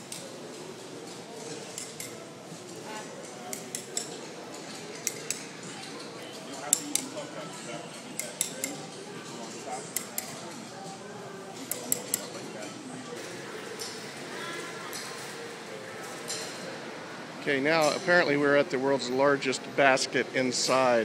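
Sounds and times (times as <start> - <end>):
murmur of voices: 0.0 - 21.0.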